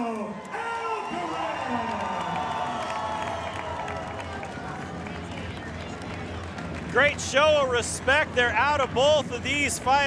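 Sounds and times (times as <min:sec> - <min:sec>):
scattered clapping: 0:00.4 - 0:08.8
murmur of crowd voices: 0:03.8 - 0:10.0.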